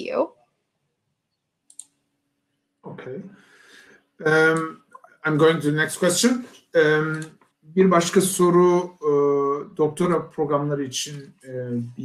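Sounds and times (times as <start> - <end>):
faint clicks: 1.7 - 2.0.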